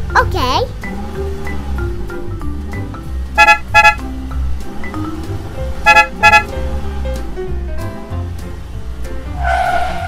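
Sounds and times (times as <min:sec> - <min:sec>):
background music: 0:00.0 - 0:10.0
double horn beeps: 0:03.4 - 0:04.1, 0:05.8 - 0:06.6.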